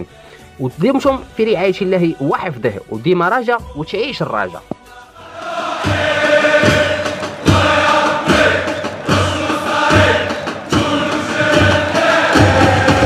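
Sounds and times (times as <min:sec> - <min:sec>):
men chanting in chorus: 0:05.0 - 0:13.0
drum beat: 0:05.3 - 0:13.0.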